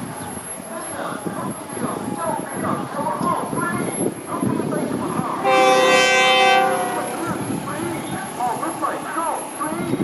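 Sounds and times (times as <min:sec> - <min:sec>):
train air horn blast: 0:05.4 - 0:07.5.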